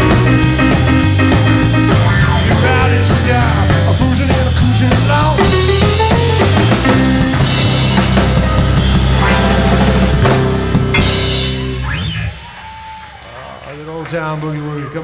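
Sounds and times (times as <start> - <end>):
live rock and roll band: 0.0 - 12.8
piano: 0.0 - 12.8
drum kit: 0.0 - 13.1.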